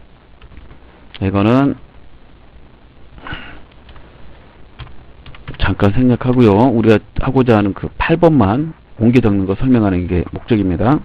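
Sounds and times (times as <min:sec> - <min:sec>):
person sniffing: 0:03.2 - 0:03.7.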